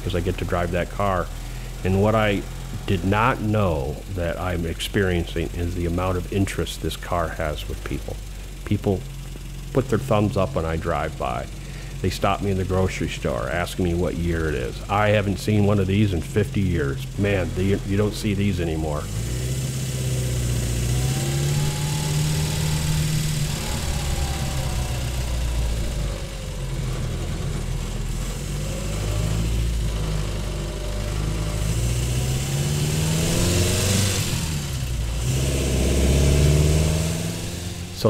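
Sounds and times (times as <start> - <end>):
car engine accelerating: 0.0 - 38.0.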